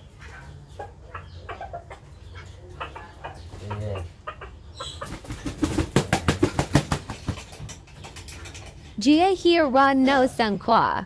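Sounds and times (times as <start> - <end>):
rooster making rapid sharp beats: 5.0 - 7.6.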